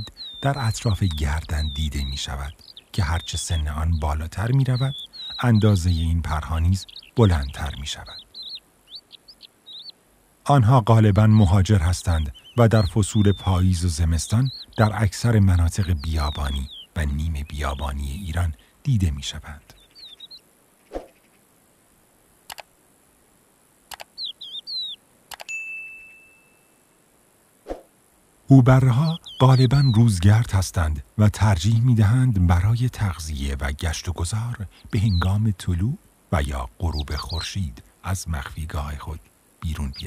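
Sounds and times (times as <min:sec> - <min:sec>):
short bird chirps: 0:00.0 - 0:00.8, 0:04.8 - 0:05.6, 0:06.8 - 0:07.2, 0:08.0 - 0:10.0, 0:19.8 - 0:21.4, 0:23.9 - 0:25.0
bird chirping: 0:00.0 - 0:21.5, 0:23.9 - 0:26.9, 0:28.5 - 0:40.0
sharp clicks: 0:22.5 - 0:22.7, 0:23.9 - 0:24.2, 0:25.3 - 0:25.5
bell ding: 0:25.5 - 0:26.8.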